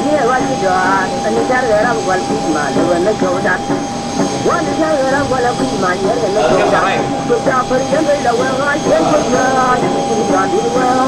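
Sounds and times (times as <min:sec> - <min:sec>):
people talking: 0:00.0 - 0:03.6, 0:04.4 - 0:11.0
jet engines whining: 0:00.0 - 0:11.0.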